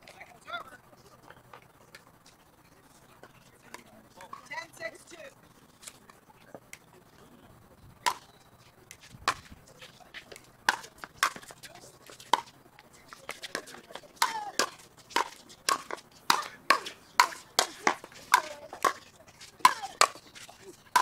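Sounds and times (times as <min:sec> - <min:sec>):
paddles striking pickleball: 0:08.0 - 0:08.3, 0:08.9 - 0:21.0.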